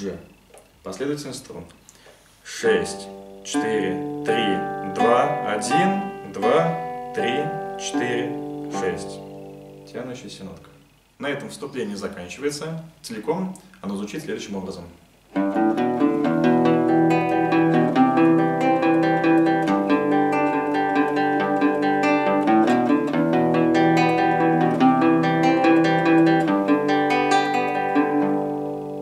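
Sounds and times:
fingerpicked nylon-string guitar: 0:02.6 - 0:11.7, 0:15.3 - 0:29.0.

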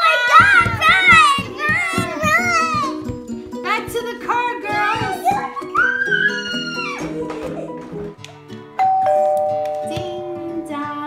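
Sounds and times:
background music: 0:00.0 - 0:11.0
doorbell ding-dong chime: 0:08.8 - 0:11.0.

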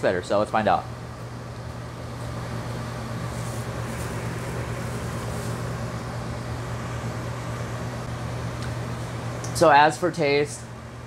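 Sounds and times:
ventilation fans humming: 0:00.0 - 0:11.0.

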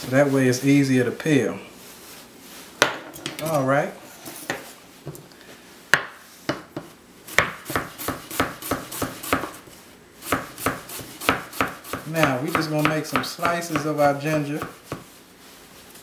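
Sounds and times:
knife chopping on cutting board: 0:05.9 - 0:09.6, 0:10.2 - 0:15.1.

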